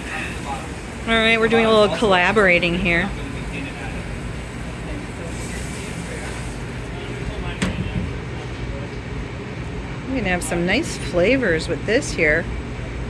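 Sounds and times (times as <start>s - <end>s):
faint voices: 0.0s - 9.5s
kitchen ventilation hum: 0.0s - 13.0s.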